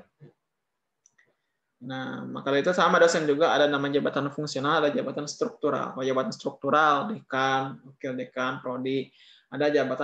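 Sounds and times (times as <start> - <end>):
man speaking: 1.8 - 10.0.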